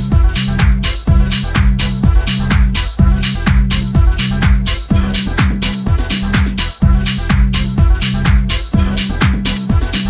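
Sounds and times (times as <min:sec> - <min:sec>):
kick drum: 0:00.0 - 0:10.0
off-beat hi-hats: 0:00.0 - 0:10.0
steady bass line: 0:00.0 - 0:10.0.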